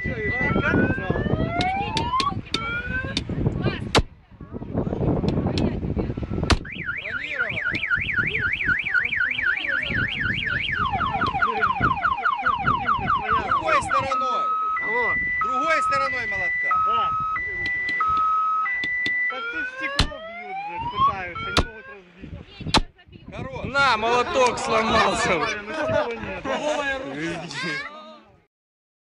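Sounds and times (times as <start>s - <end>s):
car alarm siren: 0.0s - 3.2s, 6.4s - 22.0s.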